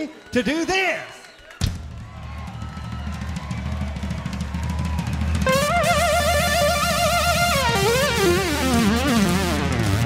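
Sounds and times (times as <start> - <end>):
drums rolling: 1.6 - 10.0.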